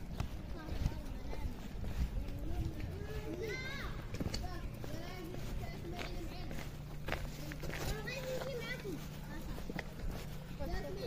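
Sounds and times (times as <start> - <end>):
children calling out: 0.0 - 11.0
footsteps on paving: 0.0 - 11.0.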